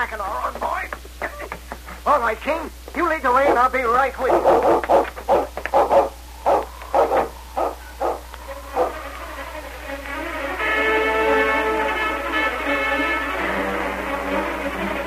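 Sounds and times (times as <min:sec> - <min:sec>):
dog barking: 0:04.2 - 0:09.1
orchestral strings and brass: 0:08.6 - 0:15.0.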